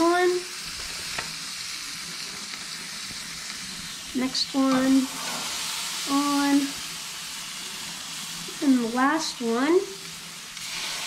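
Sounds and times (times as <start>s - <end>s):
fish sizzling on a grill: 0.0s - 11.0s.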